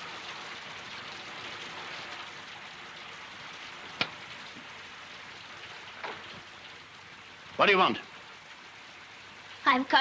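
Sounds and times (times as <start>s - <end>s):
rain falling: 0.0s - 10.0s.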